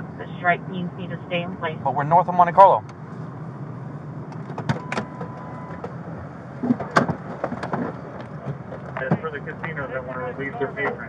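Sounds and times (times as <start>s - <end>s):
idling car interior hum: 0.0s - 11.0s.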